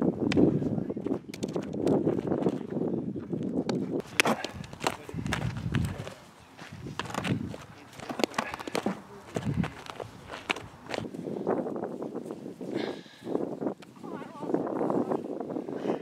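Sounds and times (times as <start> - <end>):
footsteps on dirt: 0.3 - 11.2.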